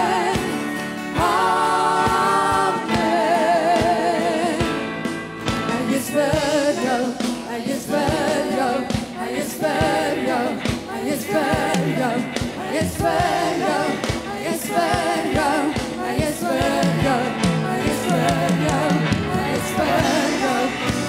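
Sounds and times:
women singing with vibrato: 0.0s - 5.0s, 5.6s - 21.0s
drum kit beating: 0.0s - 21.0s.

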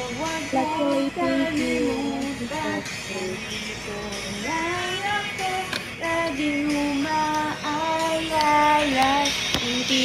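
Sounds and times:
woman singing sustained notes: 0.0s - 10.0s.

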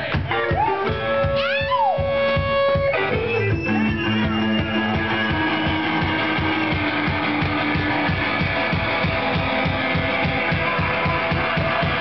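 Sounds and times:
kick drum beat: 0.0s - 12.0s
electric guitar bending notes: 0.2s - 12.0s.

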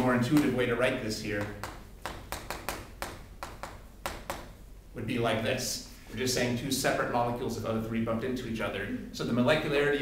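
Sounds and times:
chalk tapping on chalkboard: 0.0s - 0.6s, 1.3s - 4.6s.

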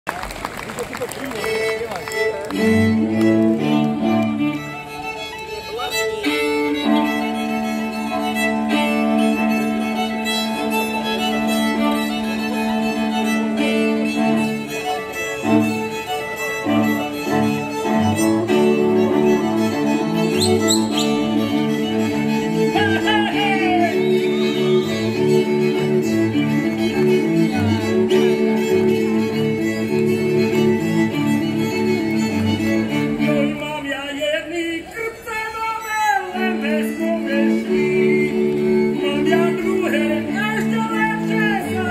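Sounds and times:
folk string band playing: 0.1s - 41.9s.

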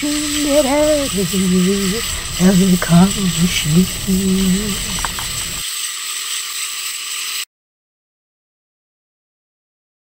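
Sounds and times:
freight train cars rattling: 0.0s - 5.6s.

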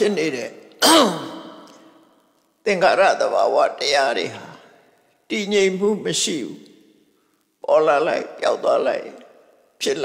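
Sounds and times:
man speaking into a microphone: 0.0s - 1.9s, 2.6s - 6.9s, 7.6s - 10.0s.

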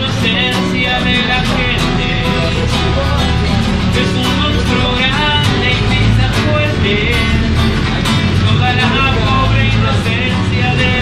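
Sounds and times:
bus engine rumble: 0.0s - 11.0s
strummed acoustic guitar: 0.0s - 11.0s.

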